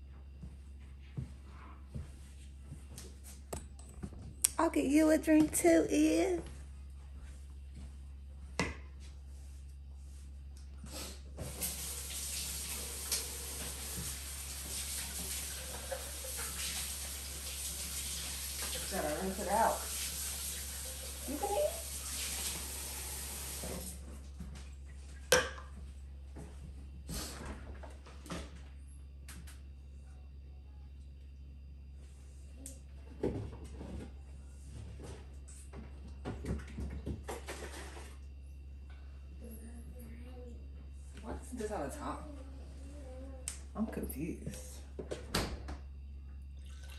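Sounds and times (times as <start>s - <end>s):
faucet running into sink: 11.4s - 24.0s.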